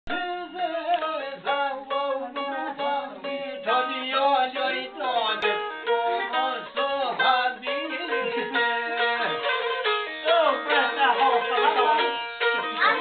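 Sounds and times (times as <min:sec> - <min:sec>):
man singing: 0:00.1 - 0:13.0
plucked lute strings: 0:00.1 - 0:13.0.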